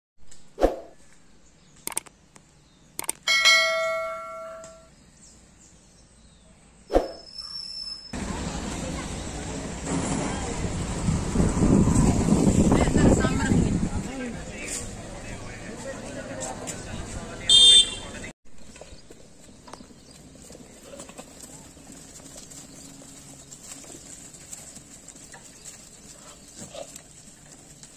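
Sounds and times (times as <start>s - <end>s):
mouse clicks: 1.8s - 2.4s, 3.0s - 3.2s
notification bell ringing: 3.3s - 4.9s
goat hooves tapping: 18.6s - 27.9s.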